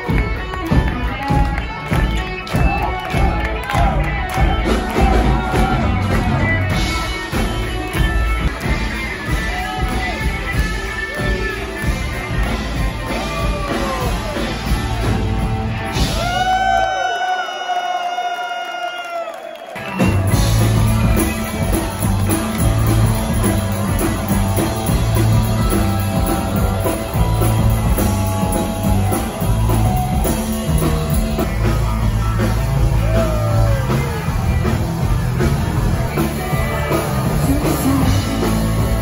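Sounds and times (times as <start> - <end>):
live rock band: 0.0 - 17.2, 19.6 - 39.0
crowd cheering: 0.0 - 39.0
drum beat: 19.8 - 39.0.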